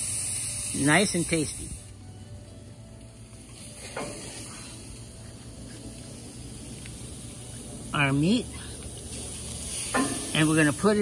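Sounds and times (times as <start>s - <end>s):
grill hissing: 0.0s - 11.0s.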